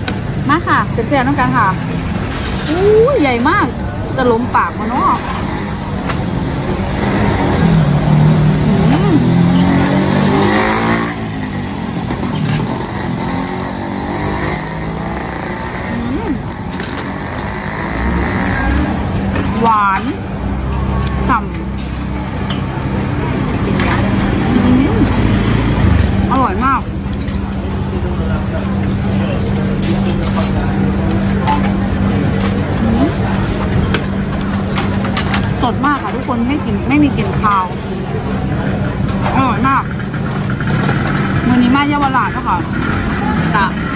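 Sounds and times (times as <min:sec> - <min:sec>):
vehicle engine noise: 0:00.0 - 0:43.9
people talking nearby: 0:00.3 - 0:10.6, 0:14.2 - 0:43.9.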